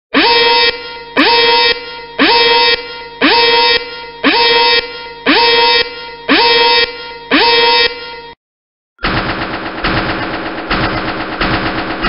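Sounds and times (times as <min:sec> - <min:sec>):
buzzy warning horn blasts: 0:00.1 - 0:08.4.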